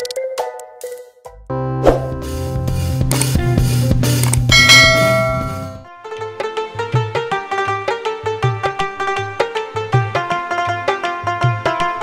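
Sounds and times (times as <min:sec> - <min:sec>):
bright bell-like chime: 0:04.5 - 0:05.8.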